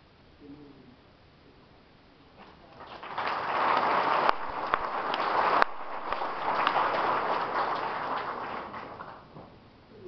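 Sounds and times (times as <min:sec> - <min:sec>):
audience applauding: 0:02.4 - 0:09.3
loud close claps: 0:02.4 - 0:09.6.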